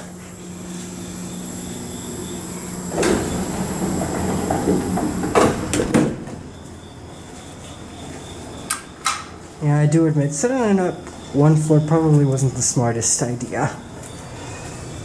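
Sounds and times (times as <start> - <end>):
elevator hum: 0.0 - 15.0
elevator doors knocking shut: 2.8 - 6.5.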